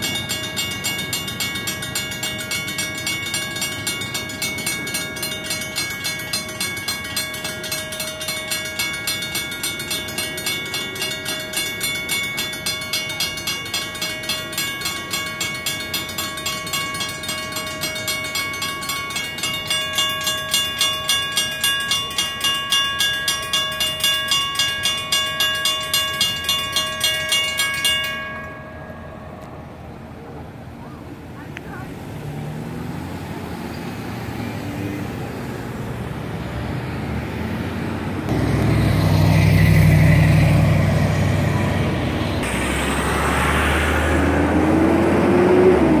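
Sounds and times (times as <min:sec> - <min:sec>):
railroad crossing bell ringing: 0:00.0 - 0:37.7, 0:38.3 - 0:42.7
road traffic passing: 0:00.0 - 0:46.0.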